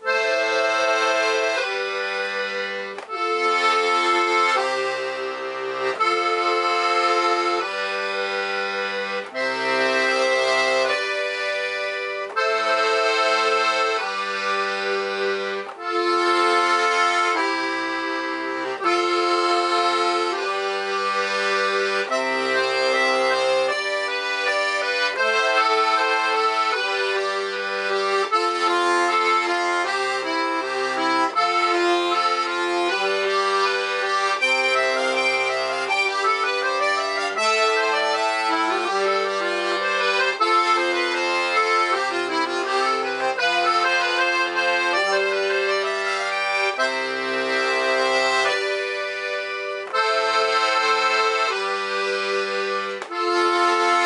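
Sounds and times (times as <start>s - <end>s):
accordion playing a tune: 0.0s - 54.0s.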